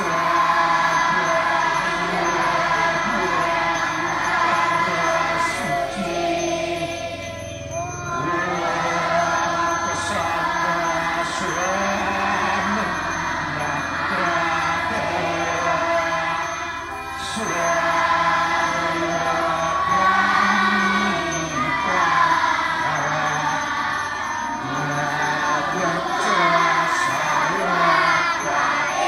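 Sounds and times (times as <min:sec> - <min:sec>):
voices chanting a prayer: 0:00.0 - 0:29.0.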